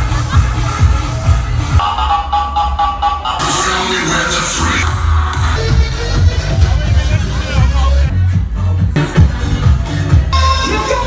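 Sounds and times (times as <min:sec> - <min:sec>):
kick-drum beat: 0:00.0 - 0:02.0.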